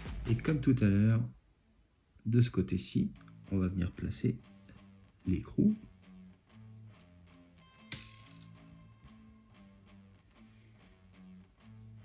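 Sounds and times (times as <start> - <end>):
quiet guitar music with bass: 2.2 - 12.0.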